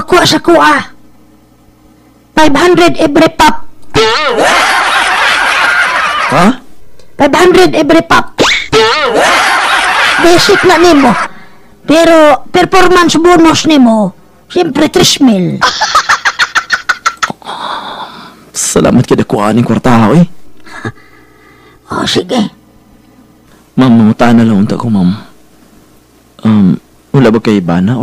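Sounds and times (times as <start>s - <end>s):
steady high tone with hiss: 0.0s - 28.0s
canned laughter: 4.0s - 6.6s, 8.8s - 11.3s, 15.6s - 17.3s.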